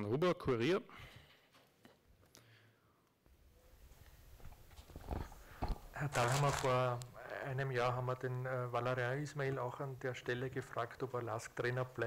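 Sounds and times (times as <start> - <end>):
rustling: 3.9 - 7.1.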